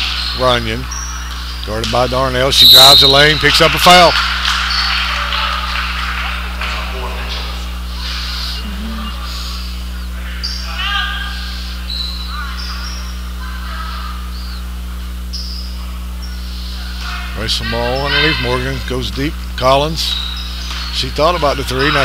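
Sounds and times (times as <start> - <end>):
electrical hum: 0.0 - 22.0.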